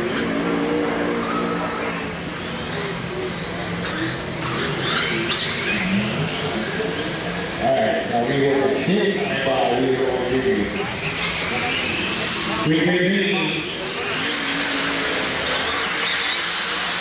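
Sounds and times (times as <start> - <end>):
rc car motors whining: 0.0 - 17.0.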